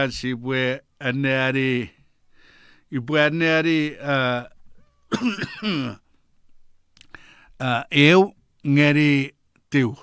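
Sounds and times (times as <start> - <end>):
man clearing his throat: 5.1 - 6.0.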